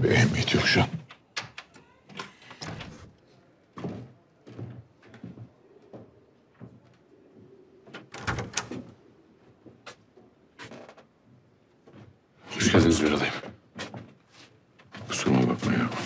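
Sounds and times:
wooden door opening: 0.8 - 3.2, 7.9 - 9.0
door clattering open: 1.4 - 3.1, 8.0 - 8.9.

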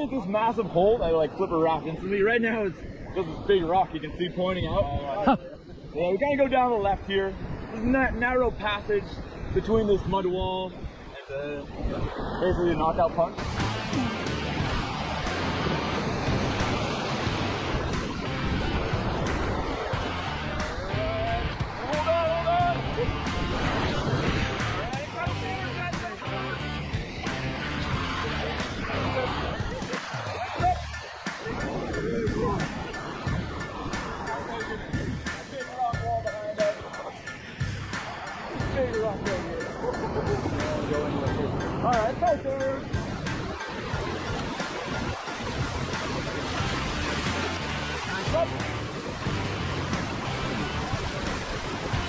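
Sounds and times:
whitewater rushing: 10.8 - 52.0
music with steady beat: 13.4 - 52.0.

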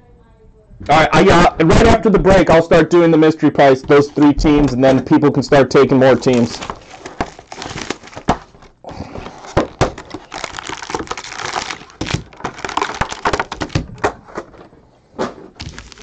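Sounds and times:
plastic wrap crinkling: 3.4 - 16.0.

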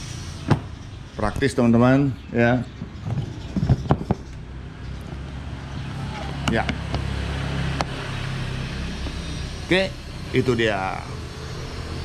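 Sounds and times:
low engine hum: 2.2 - 12.0.

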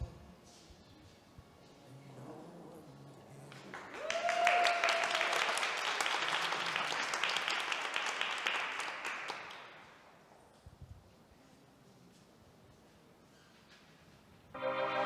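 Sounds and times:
audience applauding: 3.4 - 10.0
person cheering: 4.0 - 5.4.

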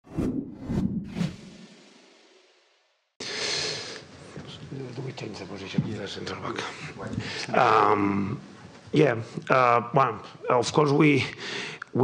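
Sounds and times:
quick whooshes: 0.0 - 2.5.

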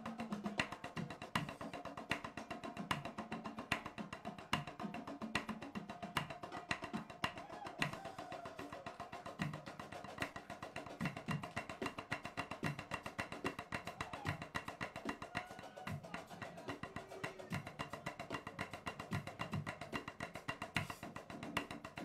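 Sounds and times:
tenor drums playing fast groove: 0.0 - 22.0.

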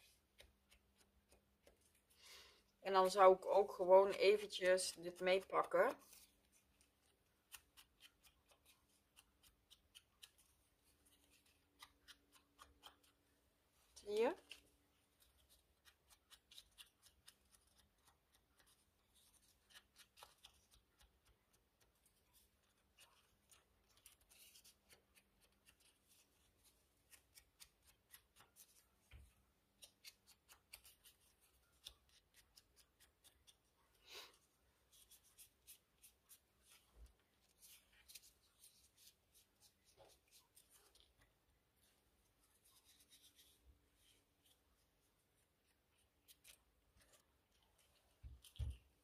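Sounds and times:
paper rustling: 4.5 - 13.2, 14.4 - 34.0, 34.8 - 44.8.

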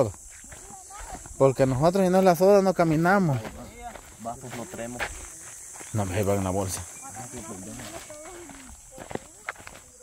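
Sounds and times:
high-pitched insect buzz: 0.0 - 4.0, 4.8 - 10.0
footsteps on dirt trail: 0.0 - 10.0.

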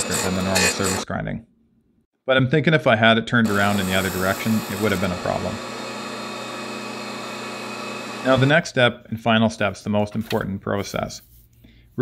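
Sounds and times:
surface grinder running: 0.0 - 1.0, 3.4 - 8.5.

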